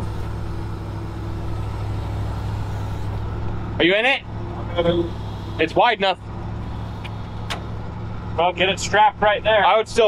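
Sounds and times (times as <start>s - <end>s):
truck engine idling: 0.0s - 10.0s
sharp click: 7.0s - 7.7s.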